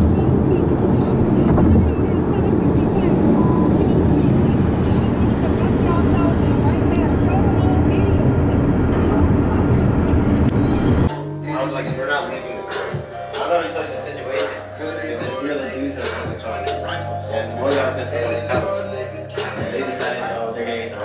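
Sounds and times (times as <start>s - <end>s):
car road and engine rumble: 0.0s - 11.1s
indistinct voices: 0.0s - 21.0s.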